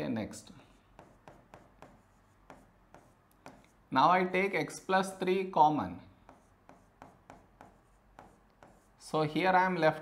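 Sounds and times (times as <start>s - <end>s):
marker pen writing on board: 0.6s - 3.8s, 6.2s - 9.1s.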